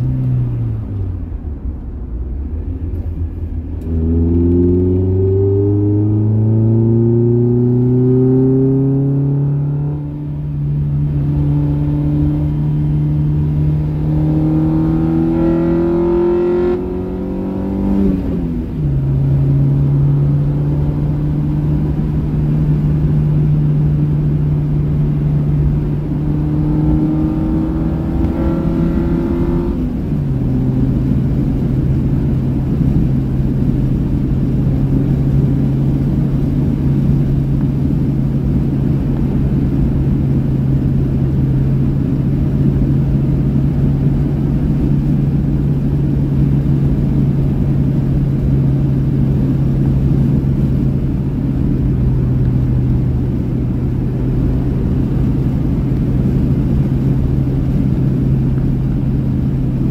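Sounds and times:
road rumble: 0:00.0 - 0:59.9
car engine revving: 0:02.4 - 0:59.9.

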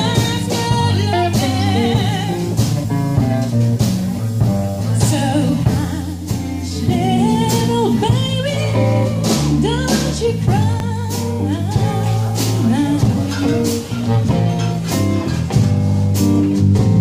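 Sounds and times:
woman singing into a microphone: 0:00.0 - 0:02.7, 0:04.8 - 0:13.9
drum kit: 0:00.0 - 0:17.0
electric bass guitar: 0:00.0 - 0:17.0.

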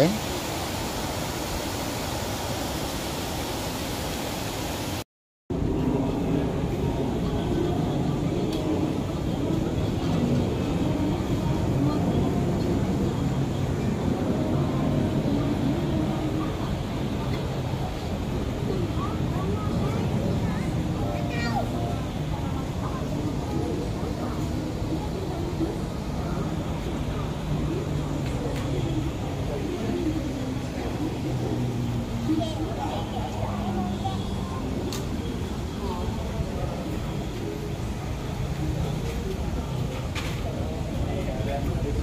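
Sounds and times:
outdoor noise: 0:00.0 - 0:42.0
faint indistinct voices: 0:05.5 - 0:42.0.

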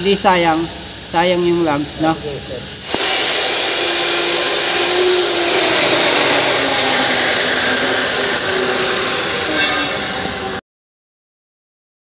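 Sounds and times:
hydraulic pump motor running: 0:02.8 - 0:10.6
faint high whine: 0:02.9 - 0:10.6.

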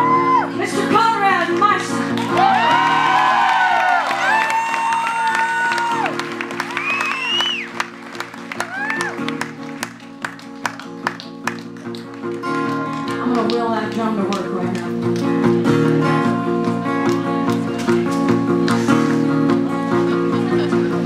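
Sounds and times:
voices whooping: 0:02.4 - 0:07.7, 0:08.6 - 0:09.2
sharp claps or clicks: 0:04.5 - 0:15.5, 0:16.6 - 0:19.3.

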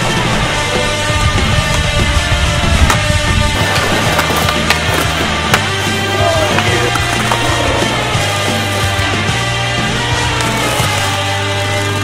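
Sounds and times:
loud backing music: 0:00.0 - 0:12.0
skateboard clacking on pavement: 0:02.8 - 0:09.3.

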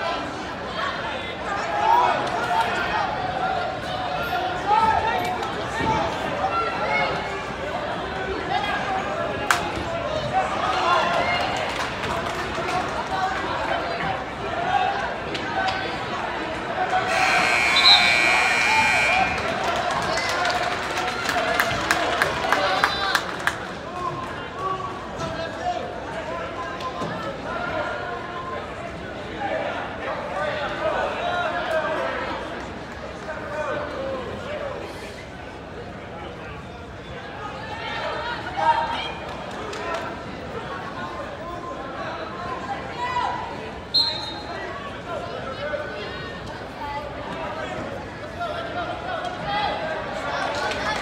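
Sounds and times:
crowd chatter: 0:00.0 - 0:51.0
referee's whistle blast: 0:17.1 - 0:19.5, 0:43.9 - 0:44.5
scoreboard buzzer: 0:17.1 - 0:19.6.

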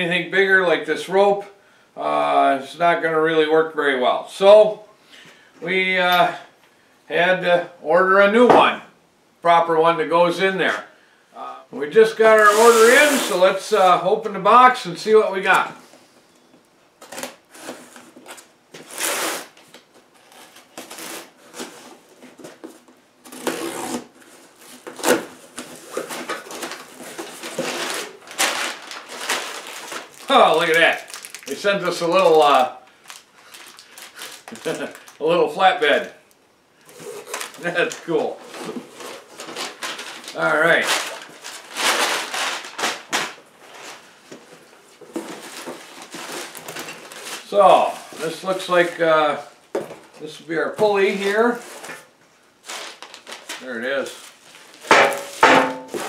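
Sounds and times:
packing paper rustling: 0:12.2 - 0:13.6, 0:17.0 - 0:36.1, 0:36.8 - 0:49.2, 0:50.9 - 0:56.0
packing tape ripping off cardboard: 0:12.4 - 0:13.4, 0:17.0 - 0:31.6, 0:32.4 - 0:35.2, 0:36.8 - 0:44.0, 0:51.6 - 0:53.6.

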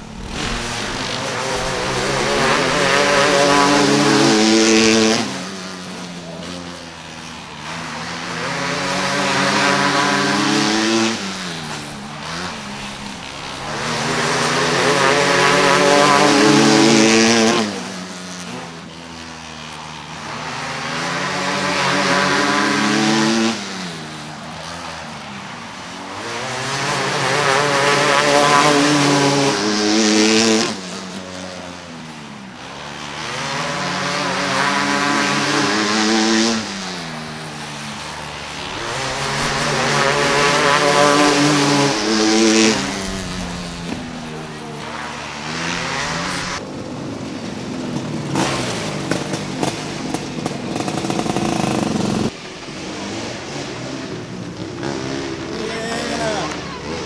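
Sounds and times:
kart engines racing: 0:00.0 - 0:57.0.

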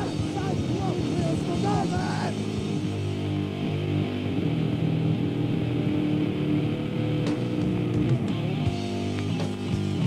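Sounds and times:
distorted guitar and bass riff: 0:00.0 - 0:10.0.

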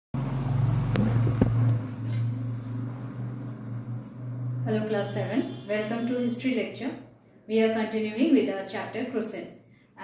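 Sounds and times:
steady low hum: 0:00.2 - 0:07.8.

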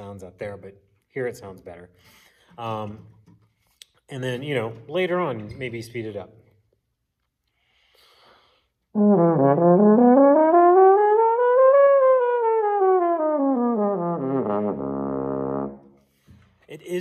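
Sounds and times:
french horn playing slurred notes: 0:09.0 - 0:16.1.

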